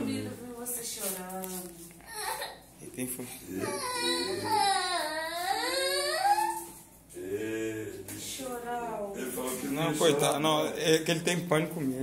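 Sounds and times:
boy crying wail: 3.6 - 6.8.

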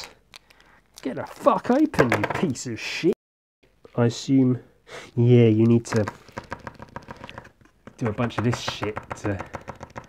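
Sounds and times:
paint marker clicking and rattling: 5.6 - 10.0.

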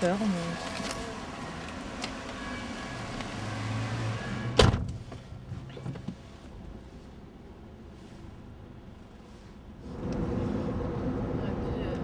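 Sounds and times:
car interior low hum: 0.0 - 12.0.

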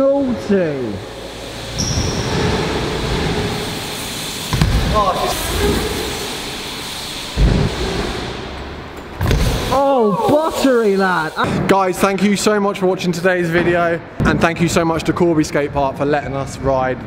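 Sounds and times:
bike tyres rolling on wooden ramps: 1.8 - 10.6
bike landing thuds: 4.5 - 5.1, 9.1 - 9.7.

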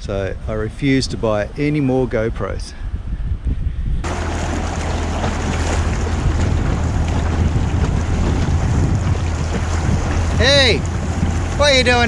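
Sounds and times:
wind buffeting microphone: 0.0 - 12.0
low rumble: 4.0 - 12.0
water rushing past boat: 4.0 - 12.0.

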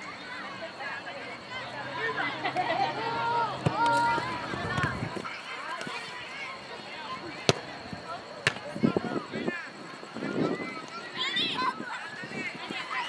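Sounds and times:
people calling out: 0.0 - 13.0.

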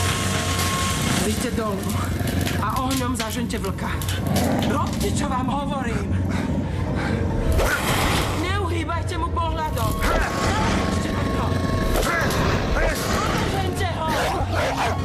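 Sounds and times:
dramatic background music: 0.0 - 15.0.

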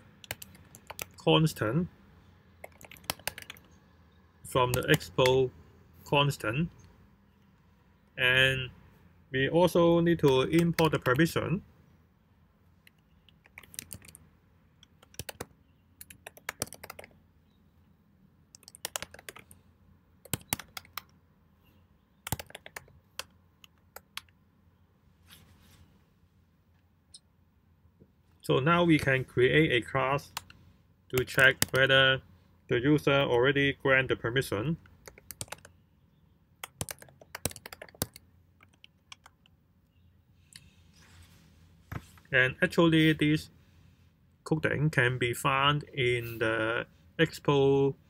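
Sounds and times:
typing on computer keyboard: 0.2 - 1.2, 2.6 - 3.7, 13.4 - 14.2, 14.8 - 17.1, 18.5 - 19.6, 20.2 - 21.1, 22.2 - 24.3, 31.2 - 31.9, 35.0 - 35.7, 36.6 - 39.5.

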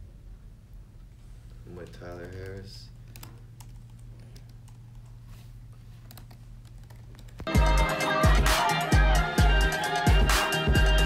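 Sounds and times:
laptop keyboard typing: 1.9 - 5.2, 6.0 - 7.5.

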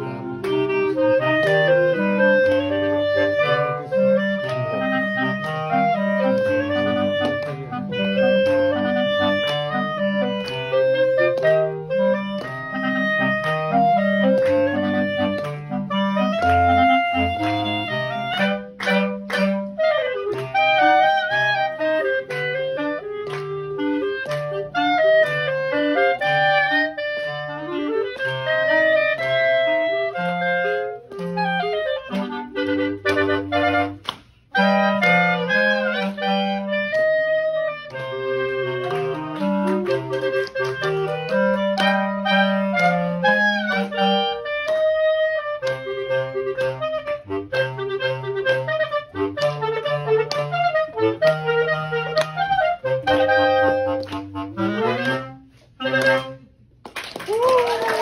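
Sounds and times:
clarinet ensemble playing: 0.0 - 58.0.

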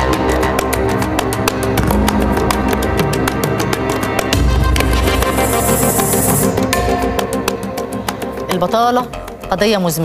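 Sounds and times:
theme music with steady beat: 0.0 - 10.0.

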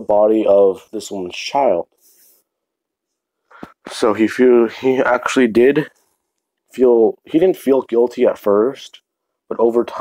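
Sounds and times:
person speaking: 0.0 - 2.4, 3.5 - 10.0.

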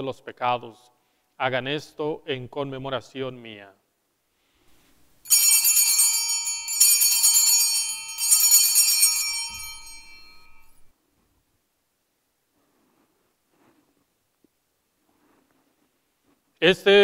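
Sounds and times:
altar bells ringing: 5.2 - 10.9.

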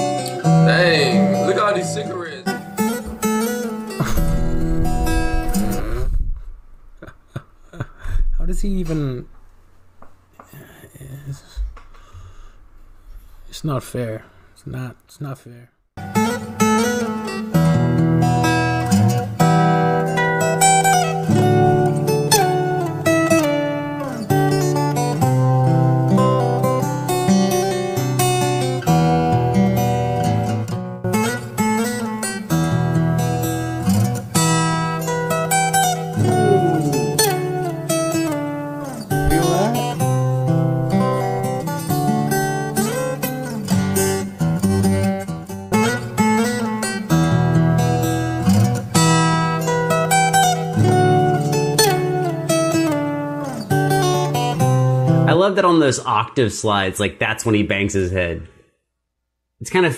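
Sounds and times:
fingerstyle acoustic guitar: 0.0 - 13.6, 16.0 - 55.4.

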